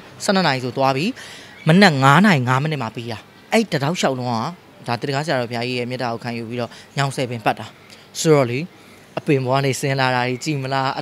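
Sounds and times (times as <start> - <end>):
man speaking: 0.2 - 11.0.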